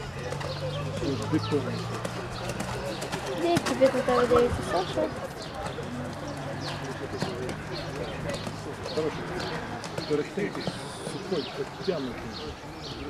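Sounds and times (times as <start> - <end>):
birds chirping: 0.0 - 13.0
people talking indistinctly: 0.0 - 13.0.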